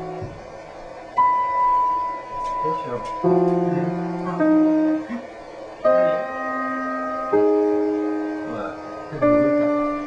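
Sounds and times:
piano music: 0.0 - 10.0.

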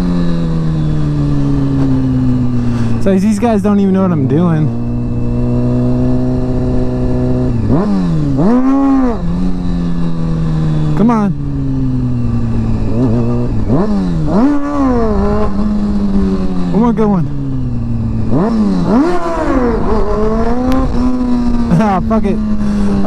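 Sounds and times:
motorcycle engine running: 0.0 - 23.0
motorcycle throttle blips: 0.0 - 23.0.

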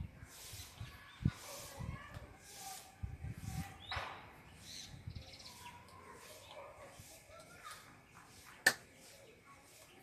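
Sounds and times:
sharp snap: 8.6 - 8.9.

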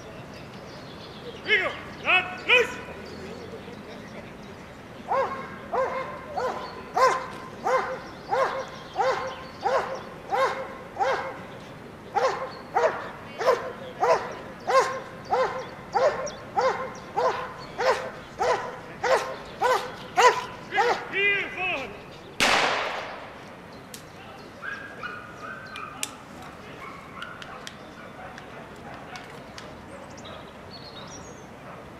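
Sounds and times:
dog barking: 5.1 - 11.4, 12.2 - 21.1, 24.6 - 26.0, 26.8 - 29.3, 30.1 - 31.9.

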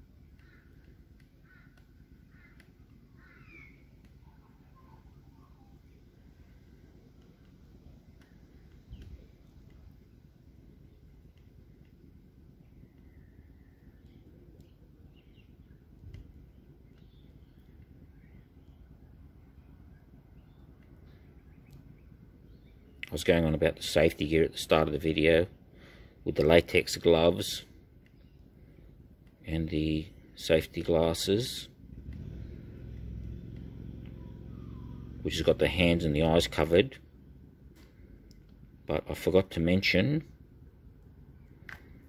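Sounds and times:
faint bird calls: 0.0 - 23.1, 25.5 - 26.3, 31.9 - 38.3
low background rumble: 0.0 - 42.0.

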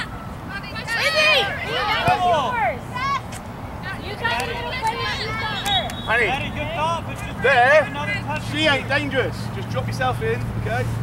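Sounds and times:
voices shouting across a field: 0.0 - 9.8.

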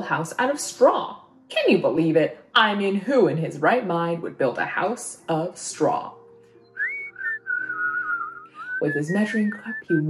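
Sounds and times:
whistled tune: 6.6 - 10.0
person's voice: 8.8 - 10.0.

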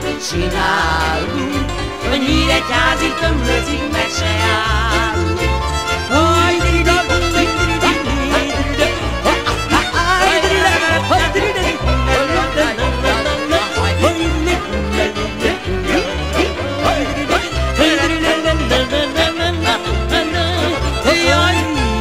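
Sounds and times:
band accompaniment with bass beat: 0.0 - 22.0
violin melody: 0.0 - 22.0.

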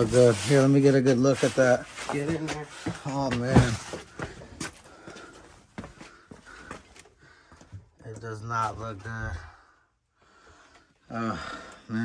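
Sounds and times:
cardboard boxes being shifted: 0.0 - 4.3.

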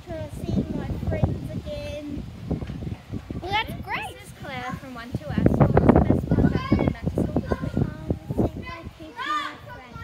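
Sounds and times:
girl speaking: 0.0 - 2.2, 3.4 - 10.0
children's voices: 0.0 - 10.0.

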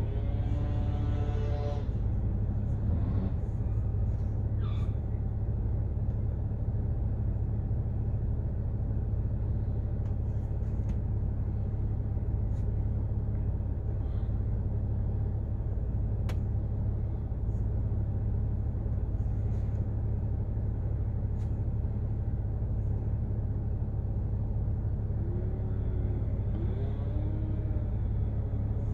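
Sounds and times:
car engine idling: 0.0 - 28.9.

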